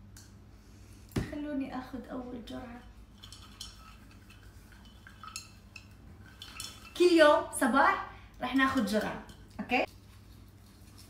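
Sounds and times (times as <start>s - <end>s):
glass jar clinking: 3.2s - 7.1s.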